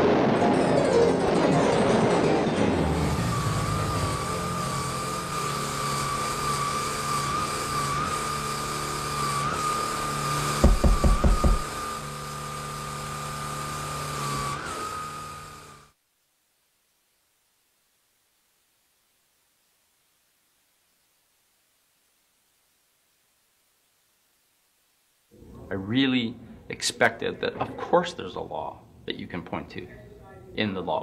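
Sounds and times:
vacuum cleaner motor whine: 2.7s - 16.0s
loud thumps: 10.6s - 11.8s.

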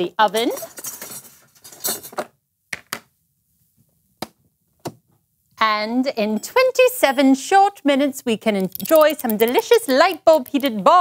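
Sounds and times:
baking pan scraping and clattering: 0.4s - 2.2s
sharp clicks: 8.6s - 10.8s.

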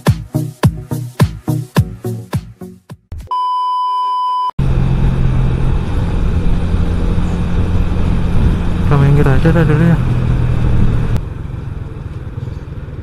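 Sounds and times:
dance music beat: 0.0s - 3.1s
electronic beep: 3.3s - 4.5s
motorcycle engine running: 4.6s - 13.0s
wind and road noise: 4.6s - 13.0s.

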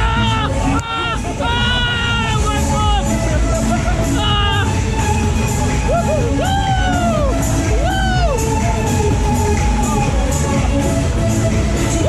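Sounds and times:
loud fairground music: 0.0s - 12.0s
riders whooping: 5.7s - 8.4s.

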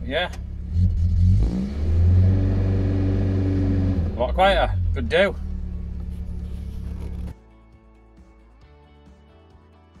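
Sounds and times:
van engine idling: 0.0s - 1.1s, 2.5s - 7.3s
soft background music: 4.2s - 10.0s.

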